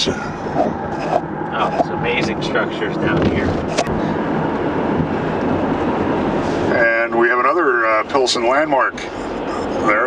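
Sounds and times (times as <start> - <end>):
tyre and road noise in car: 0.0 - 10.0.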